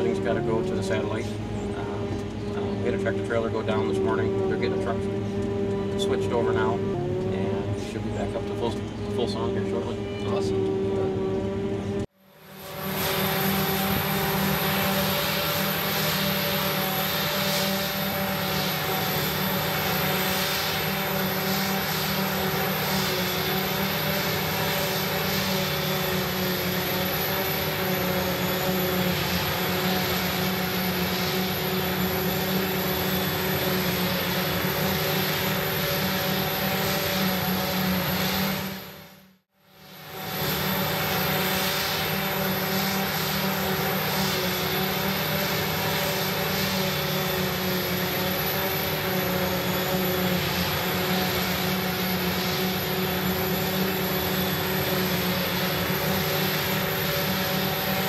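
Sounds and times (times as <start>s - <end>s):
forage harvester running: 0.0s - 58.0s
machinery whining tones: 0.0s - 58.0s.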